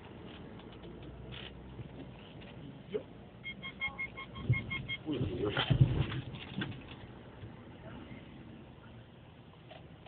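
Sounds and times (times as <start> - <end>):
rapid electronic beeps: 3.4 - 5.2.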